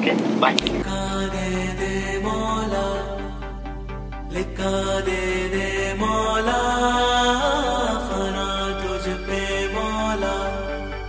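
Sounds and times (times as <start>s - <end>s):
music with long held notes: 0.6s - 11.0s.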